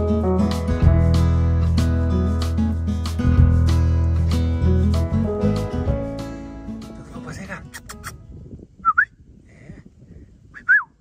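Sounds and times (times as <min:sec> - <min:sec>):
whistled notes: 0:08.8 - 0:09.2, 0:10.5 - 0:11.0.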